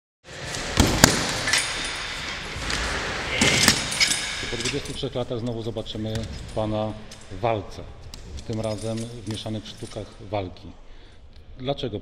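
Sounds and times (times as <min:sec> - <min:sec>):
punches hitting a heavy bag: 0:00.6 - 0:01.5.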